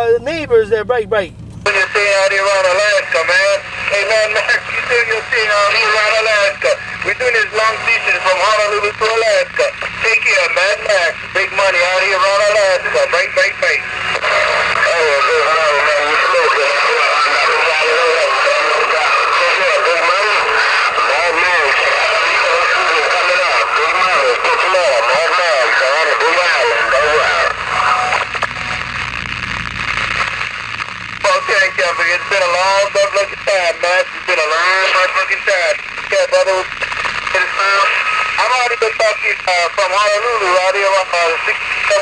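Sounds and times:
low hum: 0.0s - 42.0s
radio static: 0.0s - 42.0s
voices over radio speaker: 0.0s - 42.0s.

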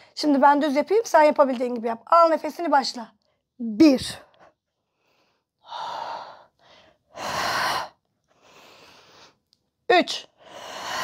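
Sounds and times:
woman breathing hard: 4.8s - 9.4s, 10.4s - 11.0s.

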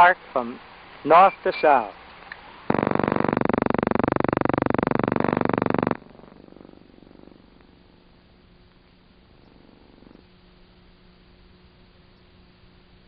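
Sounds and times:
film soundtrack hum and hiss: 0.0s - 13.0s.

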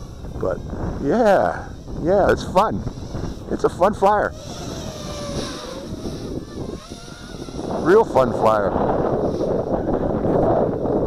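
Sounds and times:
quadcopter motors whining: 0.0s - 11.0s
wind rumble on microphone: 0.0s - 11.0s.

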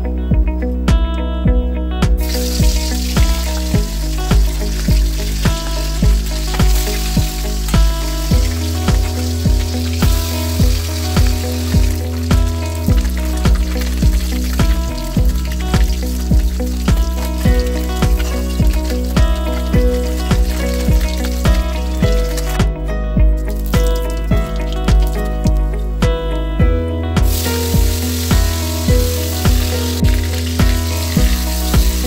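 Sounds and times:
background music with steady beat: 0.0s - 32.0s
oil sizzling in a wok: 2.2s - 22.5s, 27.2s - 32.0s.

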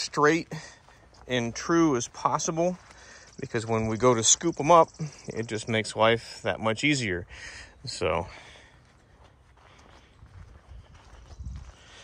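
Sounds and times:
footsteps on gravelly pavement: 0.0s - 12.0s.

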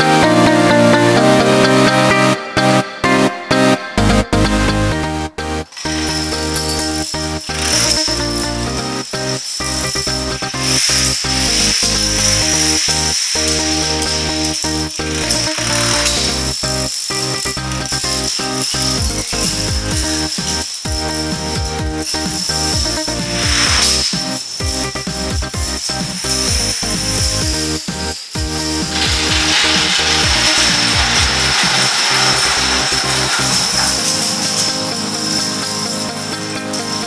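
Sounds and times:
background music: 0.0s - 37.0s
plastic dominoes toppling: 5.7s - 24.6s, 25.8s - 36.3s.

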